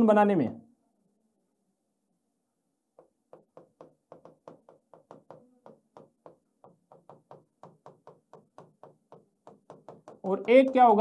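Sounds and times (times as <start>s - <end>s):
marker pen tapping on paper: 2.9s - 11.0s.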